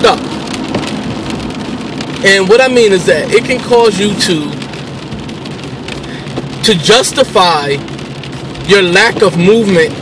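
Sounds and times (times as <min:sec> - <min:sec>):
rain on a car roof: 0:00.0 - 0:10.0.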